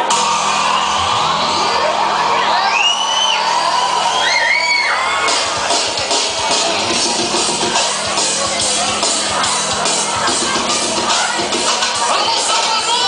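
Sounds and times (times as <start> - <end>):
audience whooping and cheering: 0.0 - 7.0
loud dance music: 0.0 - 13.0.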